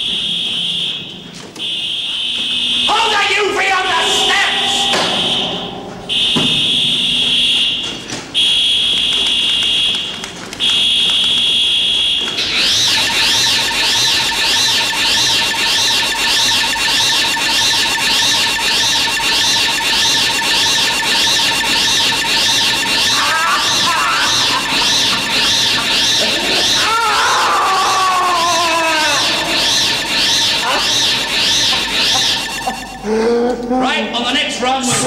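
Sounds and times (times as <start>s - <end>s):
long high beeps: 0.0s - 9.7s, 11.5s - 33.2s
warbling electronic tone: 3.6s - 7.6s, 12.5s - 33.1s
steady lower tone: 3.6s - 8.1s.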